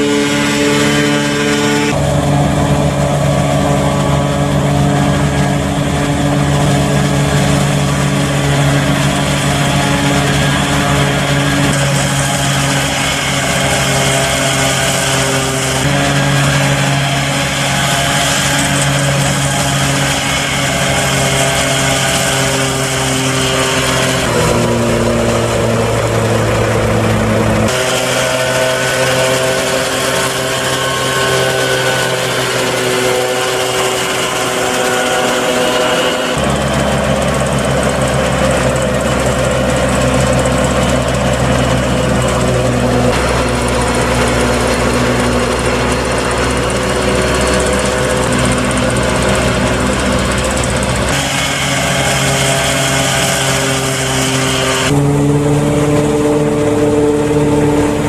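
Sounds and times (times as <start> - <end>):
forage chopper whirring: 0.0 - 58.0
tractor engine under load: 0.0 - 58.0.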